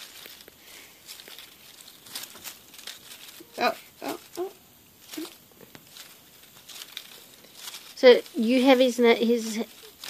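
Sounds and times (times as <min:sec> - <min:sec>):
cat calling: 0:03.4 - 0:05.4.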